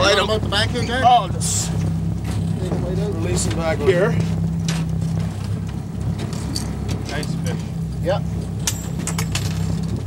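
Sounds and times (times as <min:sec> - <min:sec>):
boat motor humming: 0:00.0 - 0:10.0.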